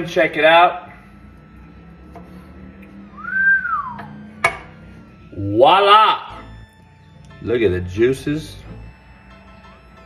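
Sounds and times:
whistled note: 3.0 - 4.3.

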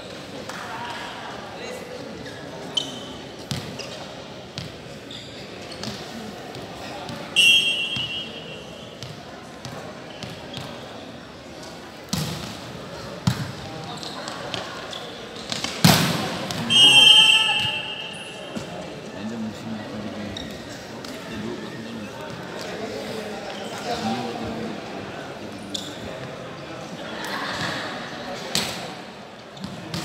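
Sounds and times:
referee's whistle: 7.4 - 8.8, 16.7 - 18.5.

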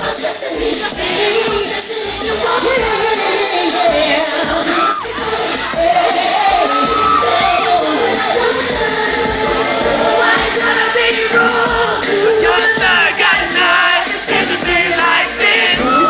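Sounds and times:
amplified backing music: 0.0 - 16.0
female vocal group singing: 0.0 - 16.0.

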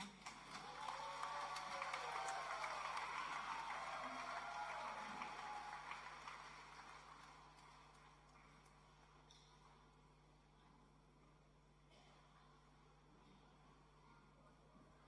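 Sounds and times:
audience applauding: 0.0 - 8.9
voices cheering: 0.5 - 6.7.

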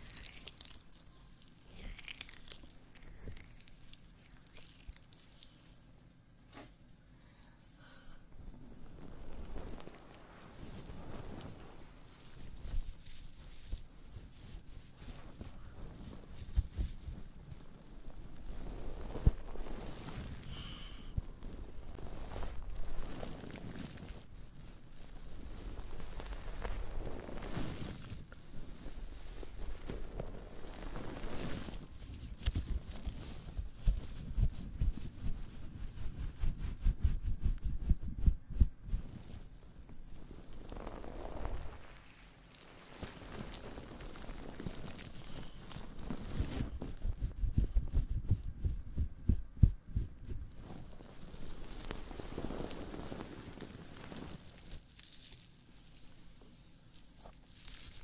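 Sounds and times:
foamy sponge squishing and crackling: 0.0 - 6.1, 8.4 - 58.0.

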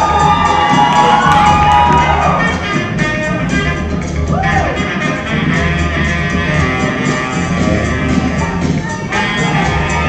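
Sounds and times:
audience cheering and shouting: 0.0 - 3.0, 4.0 - 5.2, 8.3 - 10.0
loud dance music: 0.0 - 10.0.

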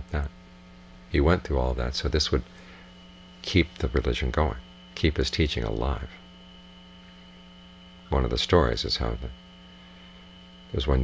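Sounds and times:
electrical mains hum: 0.0 - 11.0
thin high whine: 0.0 - 11.0.

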